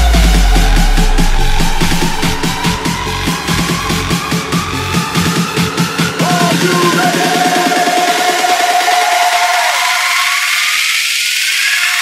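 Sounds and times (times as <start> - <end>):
rising noise sweep: 0.0 - 5.8
electronic dance music: 0.0 - 12.0.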